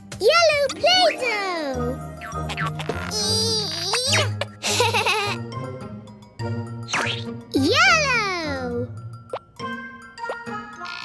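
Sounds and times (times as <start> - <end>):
children's background music: 0.0 - 11.0
cartoon baby giggling: 2.2 - 5.4.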